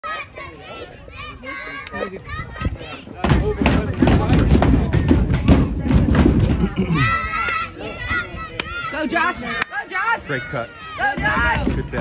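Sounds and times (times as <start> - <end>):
children chattering and calling out: 0.0 - 12.0.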